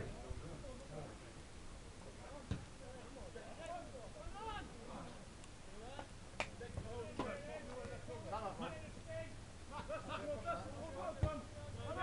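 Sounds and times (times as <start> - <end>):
distant shouting voices: 3.6 - 4.9.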